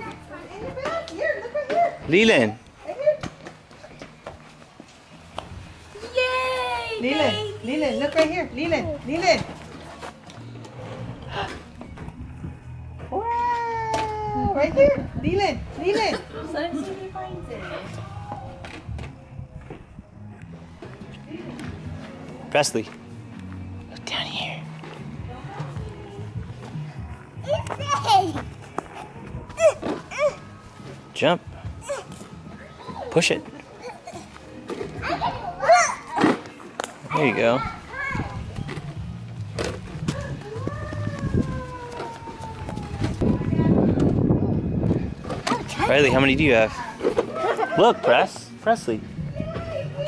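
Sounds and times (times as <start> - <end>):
young children playing: 0.0 - 2.1, 5.9 - 7.7, 25.5 - 30.8, 31.7 - 39.2, 39.8 - 48.4, 49.1 - 50.0.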